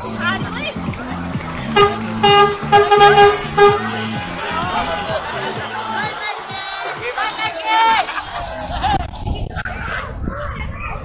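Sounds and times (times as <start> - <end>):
background music: 0.0 - 8.7
lorry horn tooting: 1.7 - 5.0.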